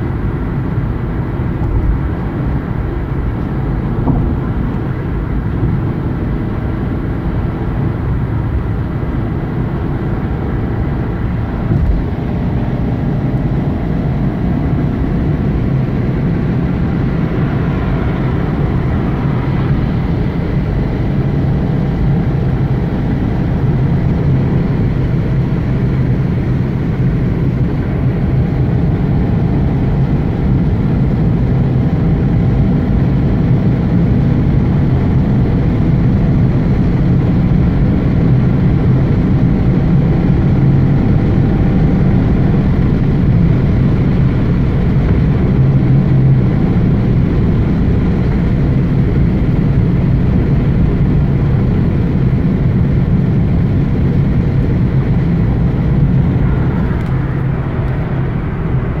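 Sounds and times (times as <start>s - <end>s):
tyres and engine rumble in car: 0.0s - 59.0s.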